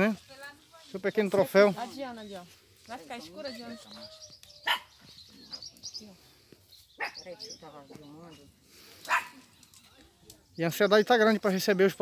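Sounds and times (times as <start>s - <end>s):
dog barking: 4.6s - 4.9s, 9.1s - 9.4s.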